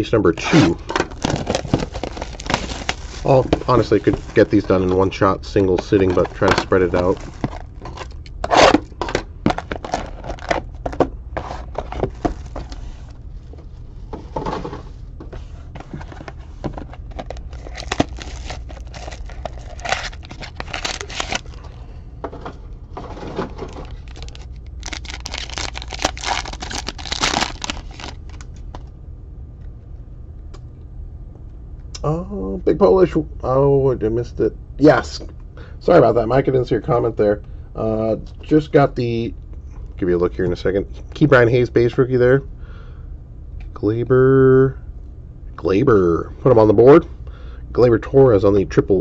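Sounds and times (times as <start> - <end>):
plastic wrappers tearing and crinkling: 0.4 - 10.8, 16.9 - 21.7, 23.4 - 28.5
cards shuffled: 0.4 - 13.2, 15.8 - 21.6, 23.5 - 28.8.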